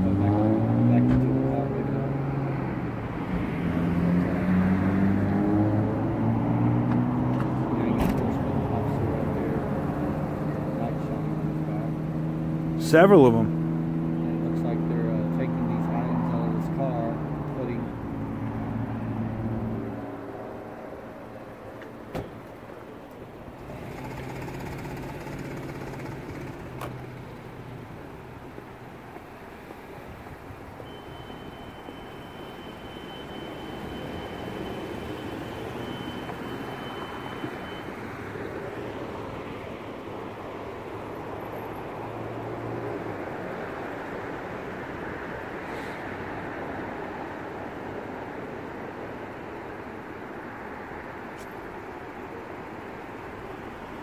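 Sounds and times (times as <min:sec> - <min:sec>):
road traffic rumble: 0:00.0 - 0:54.0
vehicle engines idling: 0:07.3 - 0:54.0
thin steady high tone: 0:30.8 - 0:38.0.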